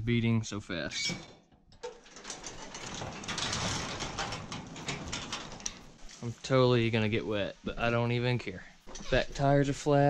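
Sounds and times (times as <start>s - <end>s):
garage door rattling up metal tracks: 1.0s - 6.2s.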